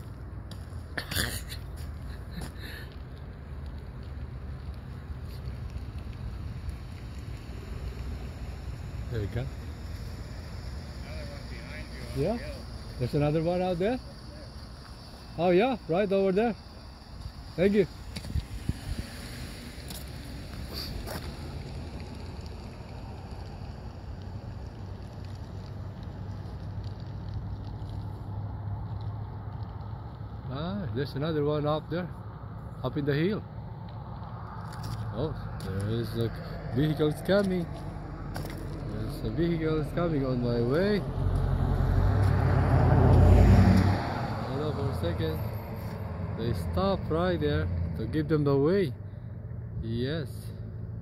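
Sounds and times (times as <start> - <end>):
pickup truck passing: 0.0 - 49.8
road noise: 0.0 - 51.0
vehicle engine humming: 0.0 - 51.0.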